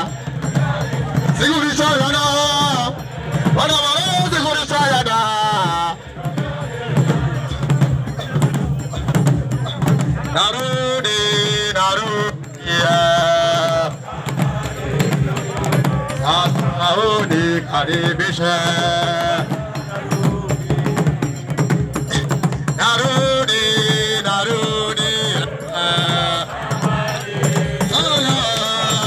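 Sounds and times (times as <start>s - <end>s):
drums and percussion beat: 0.0s - 29.0s
group singing a chant: 0.0s - 29.0s.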